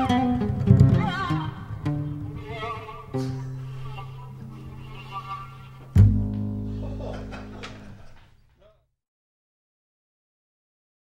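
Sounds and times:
background music low notes: 0:00.0 - 0:08.2.

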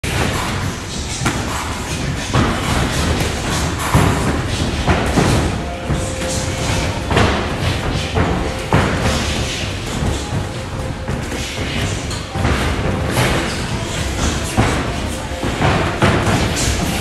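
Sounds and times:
boxing gloves punching: 0:00.1 - 0:17.0
music: 0:02.9 - 0:17.0.

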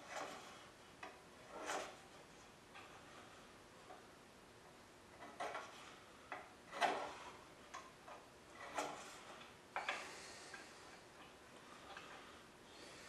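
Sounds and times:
scriber scraping steel: 0:00.0 - 0:00.8, 0:01.4 - 0:04.0, 0:05.2 - 0:13.0.

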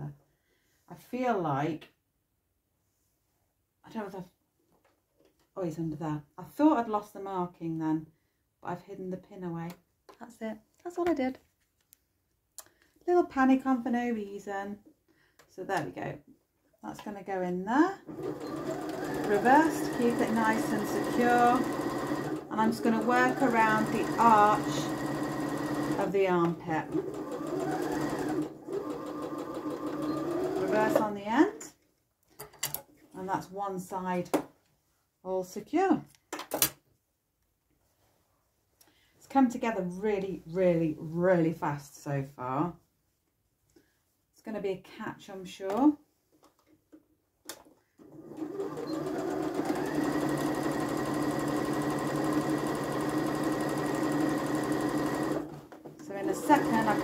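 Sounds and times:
sewing machine stitching: 0:18.0 - 0:31.6, 0:48.0 - 0:57.0.

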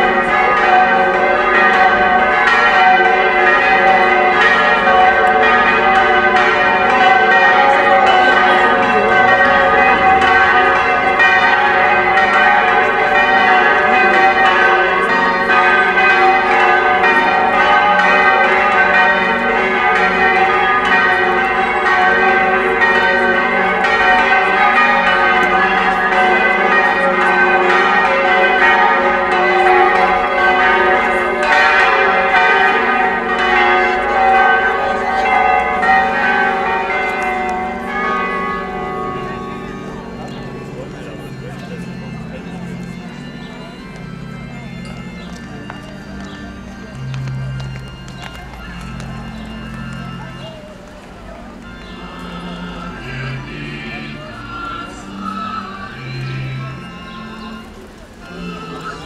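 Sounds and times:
church bells ringing: 0:00.0 - 0:59.0.

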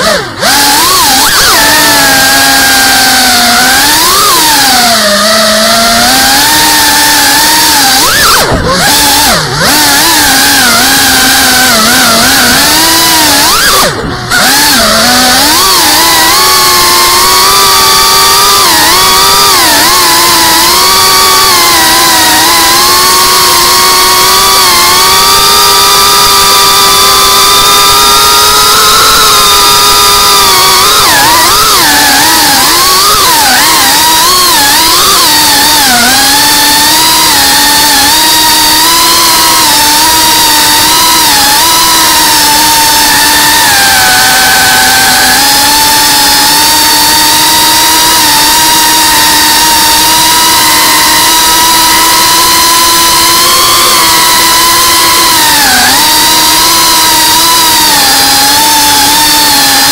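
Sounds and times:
drone motors whining: 0:00.0 - 0:59.9.

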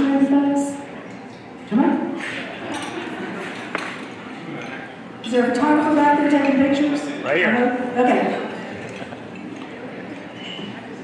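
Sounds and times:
dinner crowd chatter: 0:00.0 - 0:11.0
tableware clink: 0:02.3 - 0:04.9.

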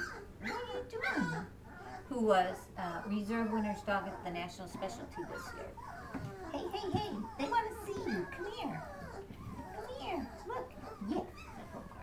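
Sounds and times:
dog whining: 0:00.0 - 0:12.0.

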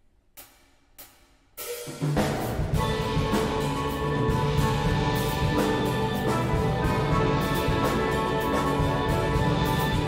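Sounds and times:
steel band playing: 0:01.6 - 0:10.0.

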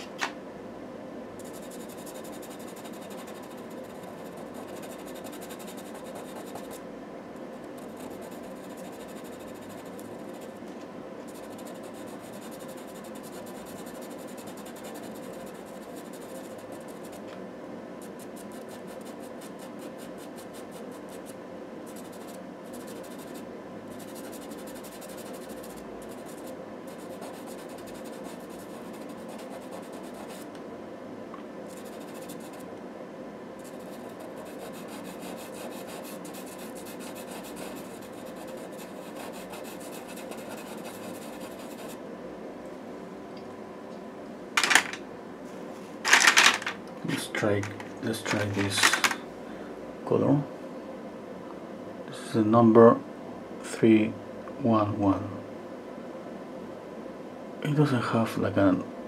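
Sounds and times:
pencil scratching on paper: 0:01.4 - 0:06.8, 0:07.5 - 0:10.6, 0:11.3 - 0:17.3, 0:18.0 - 0:30.5, 0:31.7 - 0:32.6, 0:33.6 - 0:42.0.

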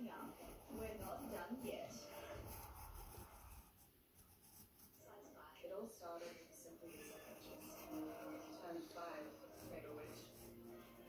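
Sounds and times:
pencil scratching on paper: 0:00.0 - 0:05.5, 0:06.8 - 0:11.0.

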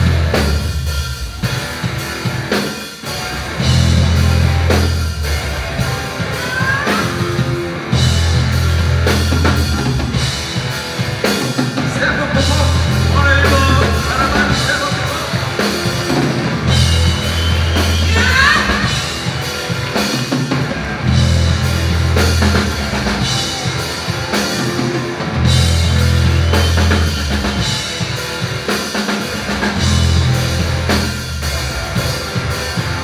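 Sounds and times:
drum kit: 0:00.0 - 0:33.0
electric bass: 0:00.0 - 0:33.0
guitar with sliding notes: 0:12.3 - 0:33.0.

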